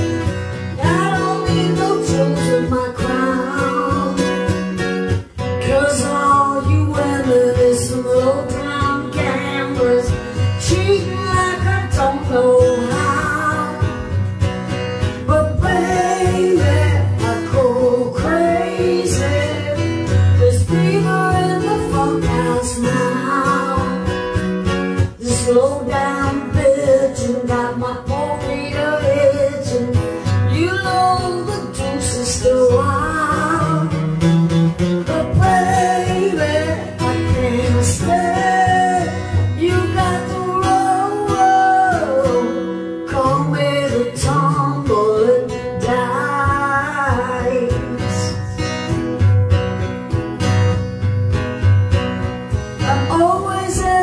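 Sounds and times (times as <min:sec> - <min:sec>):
person singing: 0:00.0 - 0:14.2, 0:15.2 - 0:24.4, 0:25.0 - 0:34.2, 0:35.0 - 0:48.8, 0:52.8 - 0:54.0
acoustic guitar strumming: 0:00.0 - 0:54.0.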